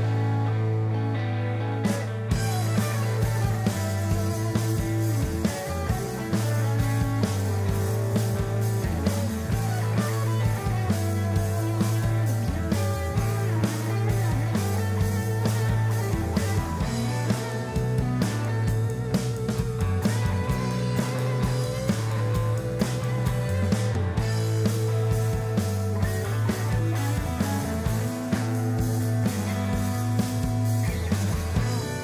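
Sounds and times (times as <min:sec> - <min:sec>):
drum kit: 0:00.0 - 0:32.0
electric guitars: 0:00.0 - 0:32.0.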